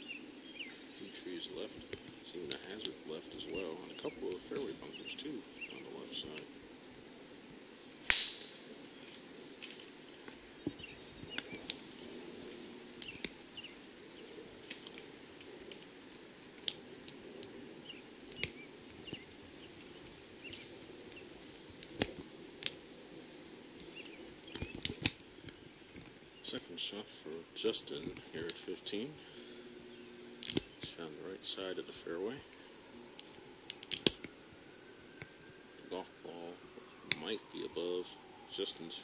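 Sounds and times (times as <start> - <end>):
golf club striking ball: 8.0 - 8.8.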